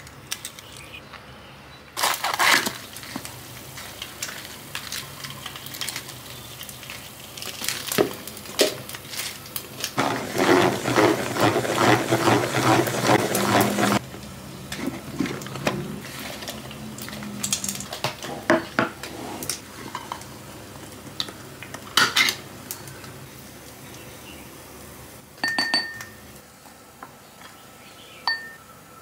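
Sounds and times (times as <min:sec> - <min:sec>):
salad spinner whirring: 0:10.0 - 0:14.0.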